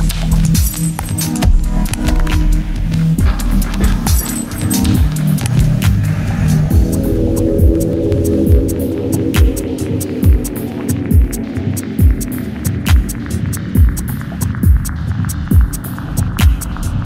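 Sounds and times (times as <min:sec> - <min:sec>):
kick drum: 0:00.0 - 0:06.0, 0:09.4 - 0:11.4, 0:12.0 - 0:16.8
deep bass drone: 0:01.3 - 0:17.0.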